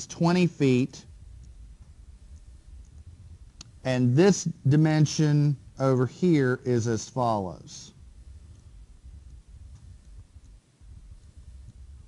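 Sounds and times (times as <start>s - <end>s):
low room hum: 0.0s - 12.0s
faint ticks: 1.4s - 3.8s, 8.5s - 10.6s
faint sharp click: 3.6s - 3.8s.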